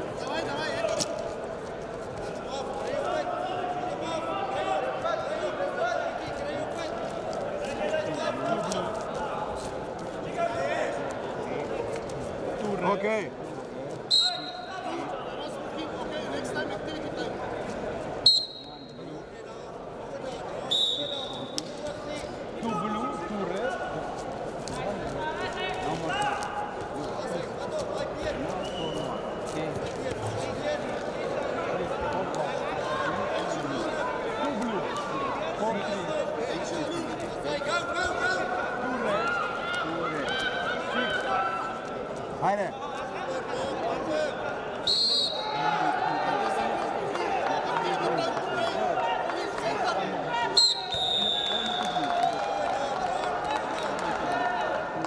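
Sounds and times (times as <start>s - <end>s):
murmur of sports hall: 0.0s - 55.0s
referee's whistle blast: 18.3s - 19.0s, 20.7s - 21.6s, 44.9s - 45.6s, 50.6s - 52.0s.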